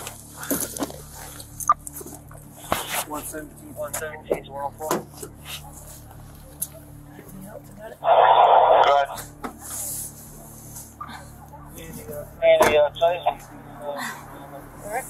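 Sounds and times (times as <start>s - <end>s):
radio static bursts: 8.0s - 9.2s.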